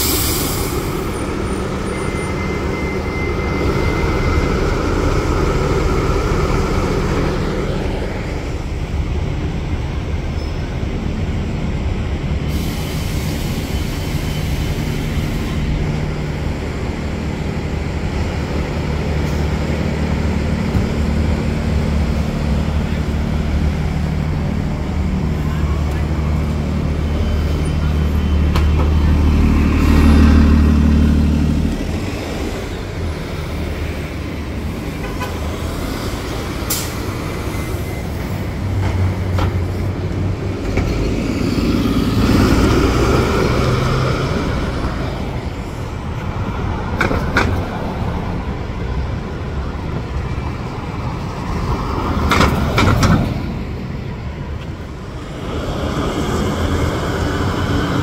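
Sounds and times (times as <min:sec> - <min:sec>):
bus engine droning: 0:00.0 - 0:58.0
bus passing: 0:00.0 - 0:58.0
traffic noise: 0:00.0 - 0:58.0.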